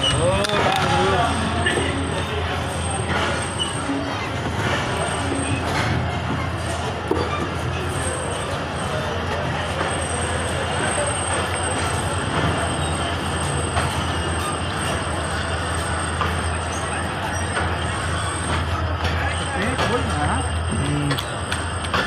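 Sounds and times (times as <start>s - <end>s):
high-pitched wheel squeal: 0.0s - 22.0s
train rumbling on rails: 0.0s - 22.0s.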